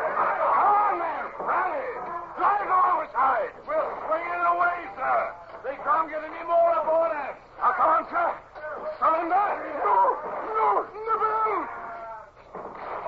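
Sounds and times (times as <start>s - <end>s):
men shouting and yelling: 0.0s - 12.4s.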